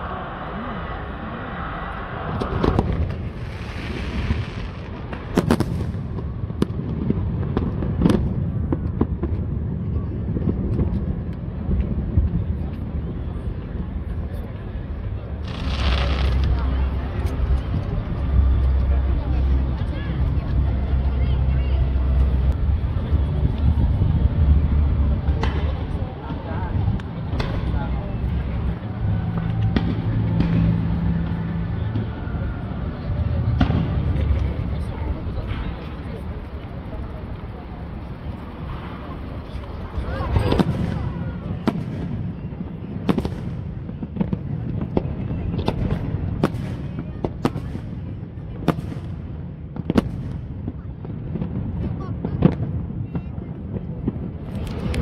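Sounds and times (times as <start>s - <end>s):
low rumble: 0.0s - 55.0s
onlookers chatting: 0.0s - 55.0s
fireworks bangs: 2.1s - 13.9s, 15.3s - 18.7s, 22.2s - 55.0s.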